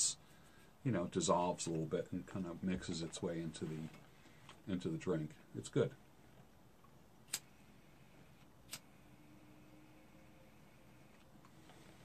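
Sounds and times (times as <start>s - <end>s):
lighter click: 7.3s - 7.5s, 8.7s - 8.9s.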